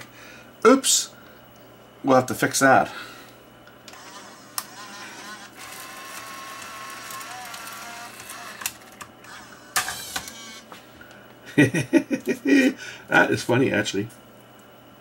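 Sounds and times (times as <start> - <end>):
tape transport motors whirring: 3.9 - 10.8
mechanism clicks: 5.6 - 10.5.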